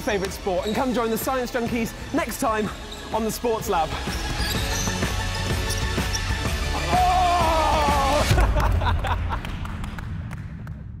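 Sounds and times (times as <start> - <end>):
low background music: 0.0 - 10.8.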